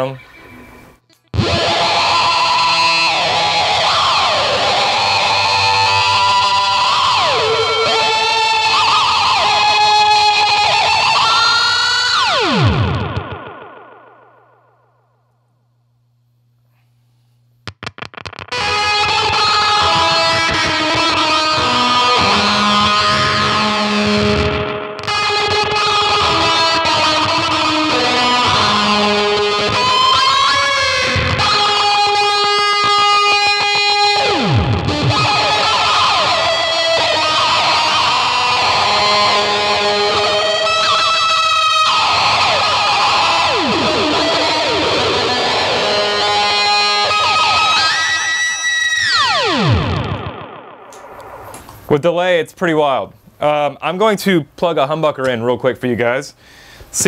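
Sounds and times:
fuzzy electric guitar with delay: 0:00.0 - 0:15.2, 0:17.6 - 0:51.9.

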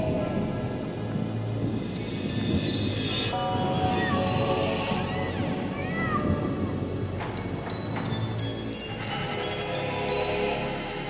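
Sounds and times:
low drone: 0:00.0 - 0:11.0
rap instrumental drums: 0:01.6 - 0:05.1.

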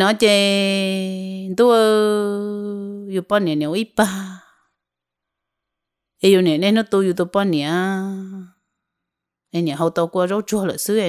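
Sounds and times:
woman speaking: 0:00.0 - 0:04.5, 0:06.2 - 0:08.5, 0:09.6 - 0:11.0.

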